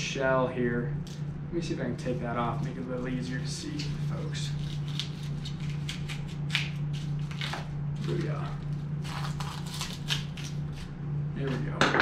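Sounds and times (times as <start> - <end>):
steady low hum: 0.0 - 12.0
knife cutting and tearing membrane: 2.4 - 11.0.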